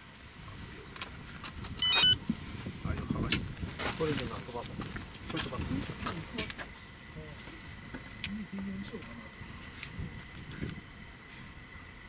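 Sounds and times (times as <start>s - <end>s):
radio transmitter beeping: 1.8s - 2.2s.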